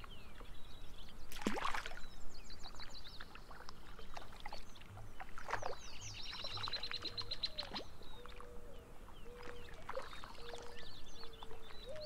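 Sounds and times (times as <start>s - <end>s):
songbirds singing and calling: 0.0s - 12.0s.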